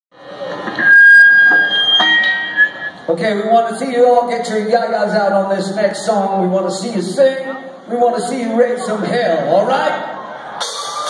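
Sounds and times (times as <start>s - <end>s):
crowd and stage noise: 0.2s - 11.0s
loud high steady tone: 0.4s - 3.2s.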